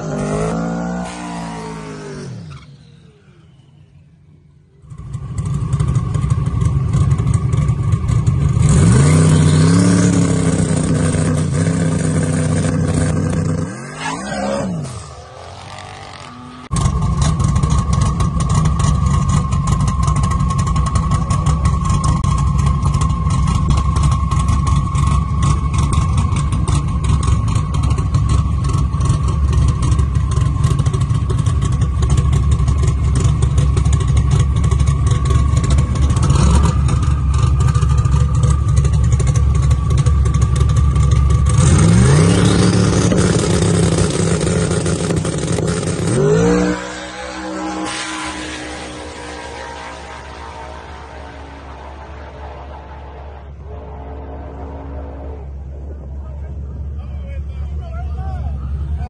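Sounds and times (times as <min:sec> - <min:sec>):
engine revving: 0:00.0 - 0:03.9, 0:04.8 - 0:57.0
high whine: 0:00.0 - 0:44.2, 0:44.9 - 0:59.0
car engine idling choppily: 0:16.7 - 0:41.6, 0:55.5 - 0:59.0.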